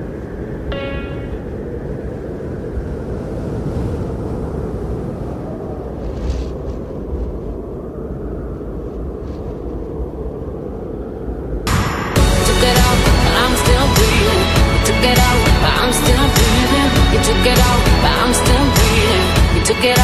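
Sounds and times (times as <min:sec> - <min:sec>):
low outdoor rumble: 0:04.7 - 0:19.7.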